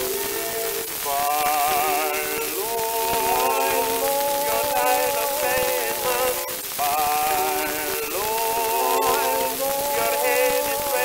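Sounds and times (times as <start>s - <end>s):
record surface hiss and crackle: 0.0s - 11.0s.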